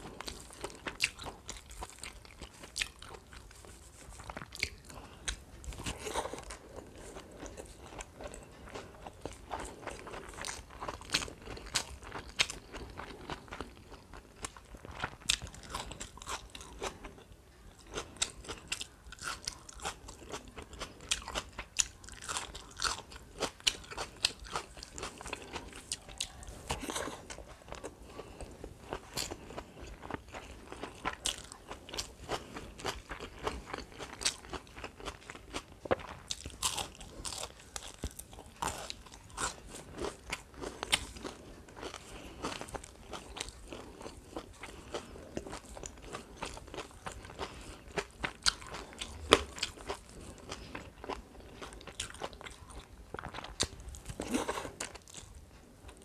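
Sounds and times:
chewing with crunches: 0.0 - 56.0.

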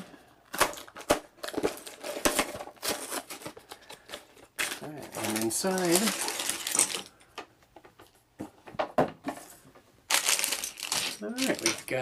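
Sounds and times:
plastic bags crinkling: 0.0 - 7.3, 10.1 - 12.0.

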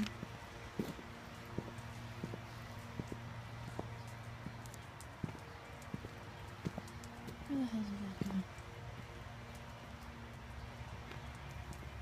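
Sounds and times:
footsteps walking: 0.0 - 8.6
low steady background noise: 0.0 - 12.0.

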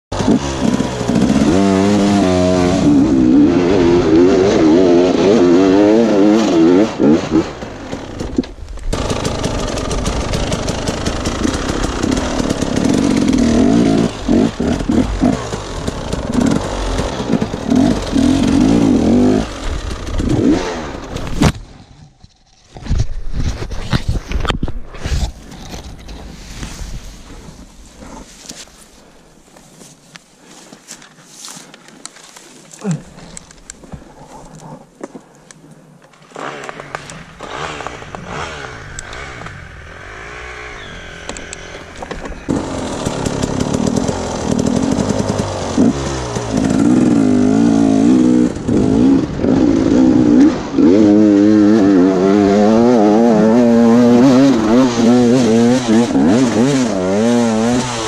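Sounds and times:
dirt bike engine revving: 0.1 - 21.5, 36.2 - 58.0.

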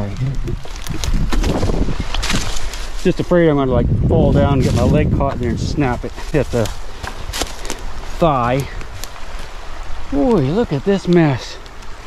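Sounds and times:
wind rumble on microphone: 0.0 - 9.0
sticks and brush crackling: 0.0 - 12.0.

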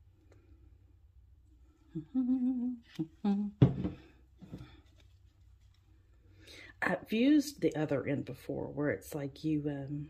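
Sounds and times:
person humming: 1.9 - 4.0.

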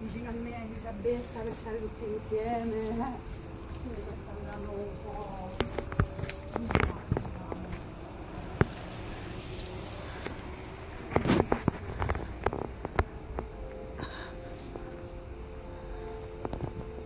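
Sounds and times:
footsteps: 0.0 - 17.0
handling knocks and clicks: 0.6 - 13.8.

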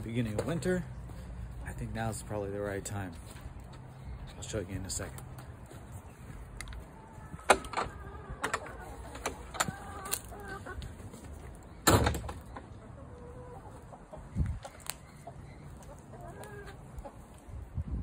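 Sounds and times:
chickens clucking: 0.0 - 17.6
loud clunk: 11.8 - 12.4.

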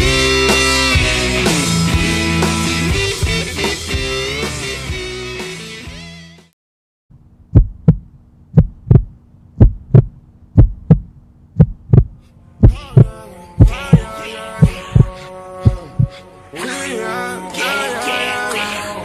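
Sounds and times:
steady low hum: 7.1 - 16.2
heartbeat thumps: 7.5 - 16.2.

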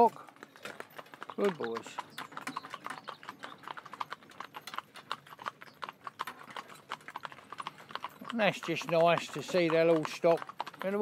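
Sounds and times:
hoofbeats on pavement: 0.0 - 11.0.

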